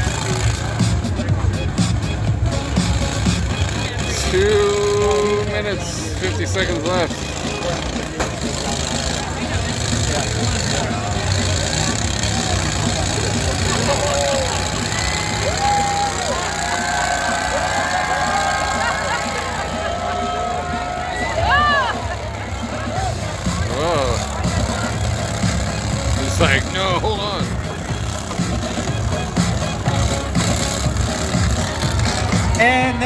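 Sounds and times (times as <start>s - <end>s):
crowd chatter: 0.0s - 33.0s
music over speakers: 0.0s - 33.0s
tractor engines running: 0.0s - 33.0s.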